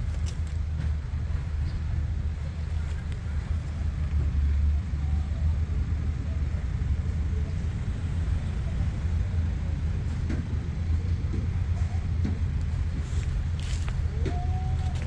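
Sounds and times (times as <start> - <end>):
low outdoor rumble: 0.0 - 15.0.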